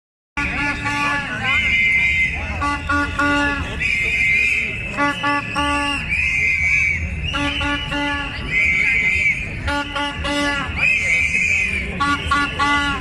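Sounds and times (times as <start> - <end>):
din of crowd voices: 0.4 - 13.0
horn in short-short-long rhythm: 0.4 - 13.0
shrill whistles: 1.5 - 2.6, 3.3 - 9.8, 10.5 - 13.0.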